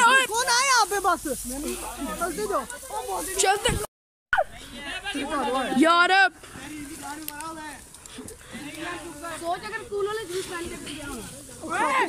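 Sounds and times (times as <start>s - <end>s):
tall grass brushing against clothes: 0.0s - 3.9s, 4.5s - 12.0s
voices talking over one another: 0.0s - 12.0s.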